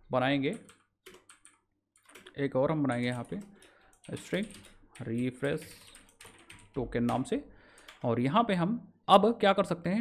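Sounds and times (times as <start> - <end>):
computer keyboard typing: 0.4 - 8.1.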